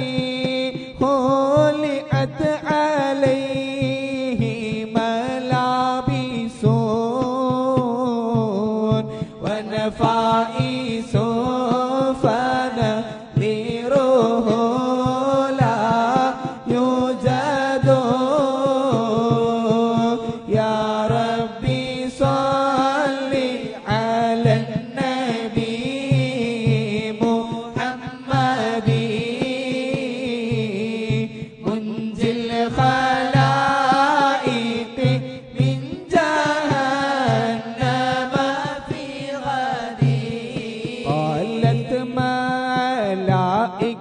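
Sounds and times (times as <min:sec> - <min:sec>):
melodic devotional chant: 0:00.0 - 0:44.0
steady percussive beat: 0:00.0 - 0:44.0.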